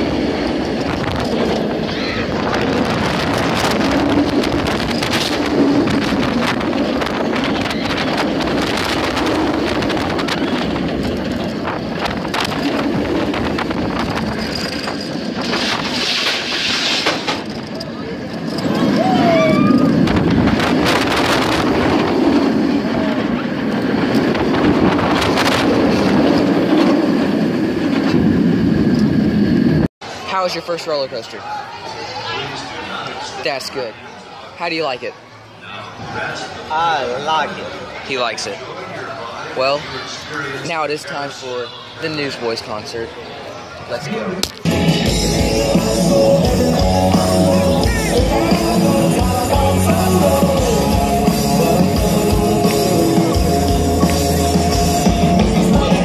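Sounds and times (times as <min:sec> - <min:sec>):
wind buffeting microphone: 0:00.0 - 0:16.6, 0:17.5 - 0:29.9
roller coaster track rumble: 0:00.0 - 0:33.6, 0:42.1 - 0:56.0
riders yelling: 0:18.8 - 0:20.1.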